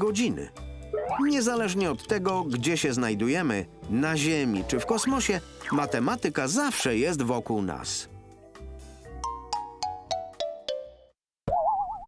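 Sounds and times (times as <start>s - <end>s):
plucked jingle music: 0.0s - 11.1s.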